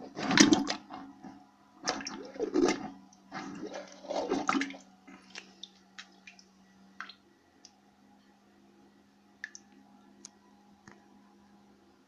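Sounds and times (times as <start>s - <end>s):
toilet plunger sloshing: 0.0s - 1.0s, 1.8s - 6.4s.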